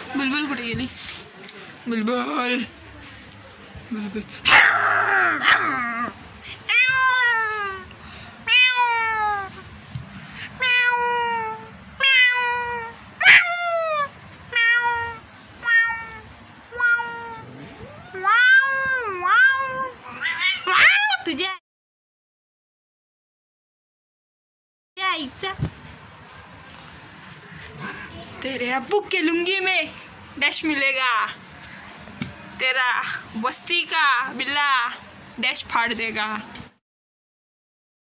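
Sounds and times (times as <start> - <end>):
cat meowing: 6.7 - 7.8, 8.5 - 9.6, 10.6 - 20.9.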